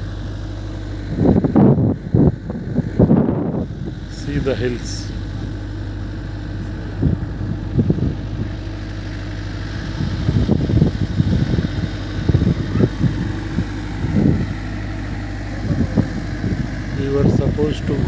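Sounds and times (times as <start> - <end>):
low mechanical hum: 0.0 - 18.0
wind buffeting microphone: 0.0 - 18.0.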